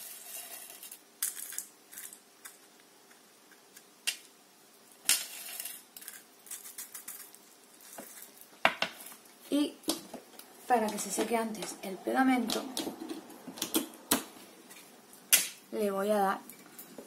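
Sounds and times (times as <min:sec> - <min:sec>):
small stones rattling against a tin: 0:00.0 - 0:02.6, 0:05.0 - 0:08.4.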